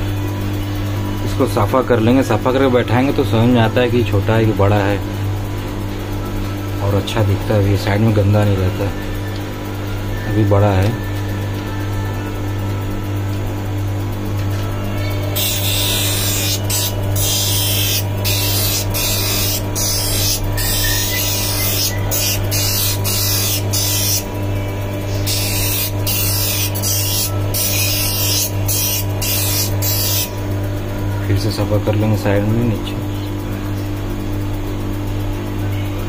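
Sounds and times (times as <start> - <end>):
lens edger motor humming: 14.2 - 30.6.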